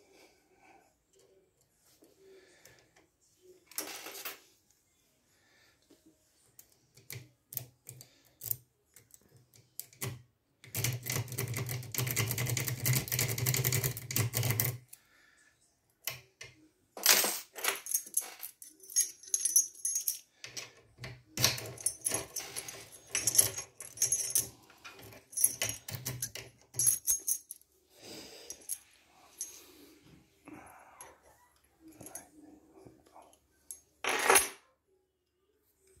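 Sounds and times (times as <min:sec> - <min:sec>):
lock picks scraping and clicking: 0:07.0 - 0:14.9, 0:17.5 - 0:27.6.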